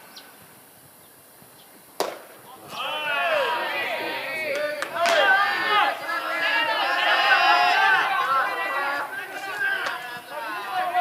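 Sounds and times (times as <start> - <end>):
baseball popping into mitt: 2.0 - 2.4
sharp crack: 2.0 - 2.8
players shouting: 2.4 - 11.0.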